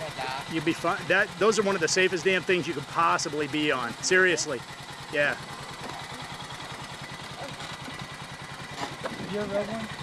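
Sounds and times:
atv engine idling: 0.0s - 10.0s.

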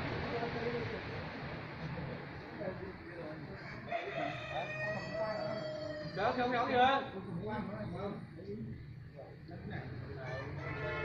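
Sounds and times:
rooster crowing: 3.6s - 6.6s, 10.2s - 11.0s.

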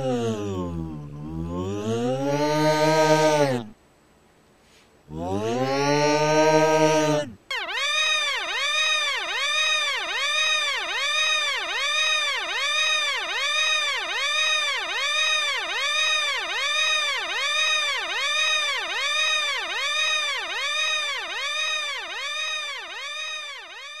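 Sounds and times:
buzzy electronic warbling tone: 7.5s - 24.0s.

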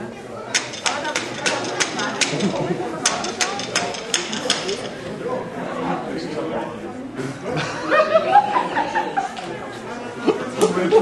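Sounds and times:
voices chattering: 0.0s - 11.0s
sharp rhythmic claps: 0.5s - 5.0s.

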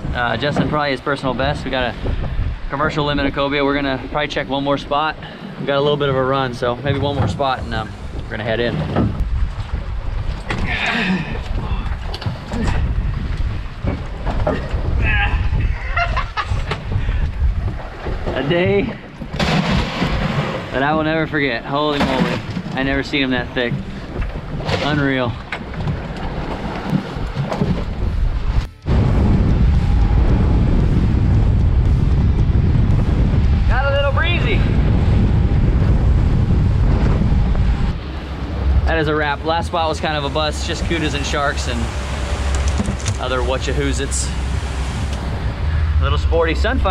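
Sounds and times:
water rushing past boat: 0.0s - 46.9s
wind buffeting microphone: 0.0s - 46.9s
deck noise: 6.4s - 46.9s
knocks on boat: 25.4s - 28.2s.

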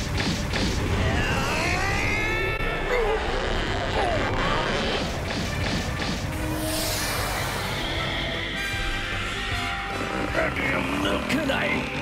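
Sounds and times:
background music: 0.0s - 12.0s
whoosh: 5.9s - 9.4s.

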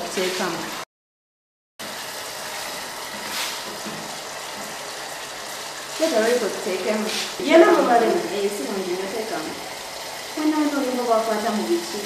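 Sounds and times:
food hissing in a pot: 2.0s - 12.0s.

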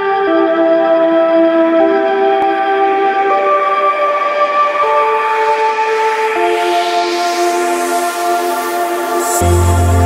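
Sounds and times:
held synth chords: 0.0s - 10.0s.

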